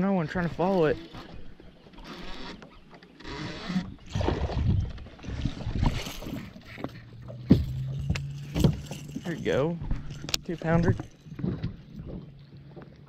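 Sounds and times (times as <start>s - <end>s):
fishing reel whirring: 0.7s - 4.0s
water splashing: 3.5s - 13.0s
low steady hum: 4.1s - 13.0s.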